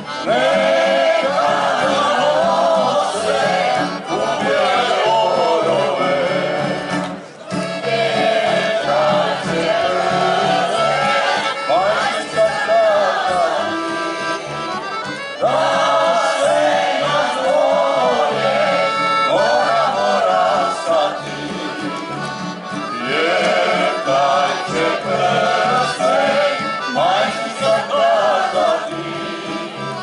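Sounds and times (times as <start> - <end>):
choir singing: 0.0 - 14.0, 15.4 - 22.0, 22.9 - 30.0
accordion: 0.0 - 30.0
guitar: 0.0 - 30.0.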